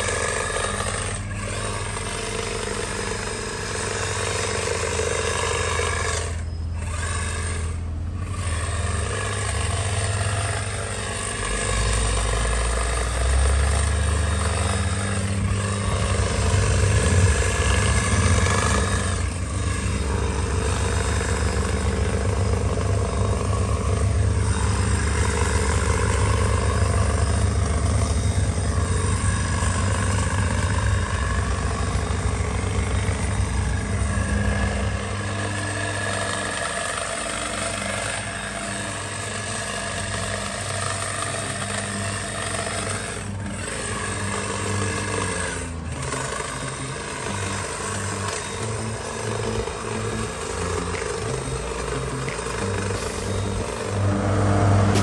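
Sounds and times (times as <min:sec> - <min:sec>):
hedge trimmer engine running: 0:00.0 - 0:55.0.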